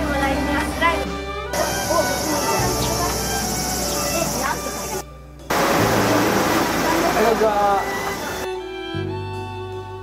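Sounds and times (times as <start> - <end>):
insects shrilling: 1.6 - 5.0.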